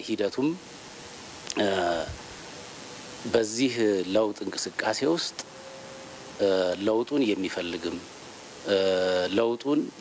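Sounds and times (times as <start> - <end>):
man speaking into microphones: 0.0 - 0.6, 1.5 - 2.2, 3.2 - 5.5, 6.4 - 10.0.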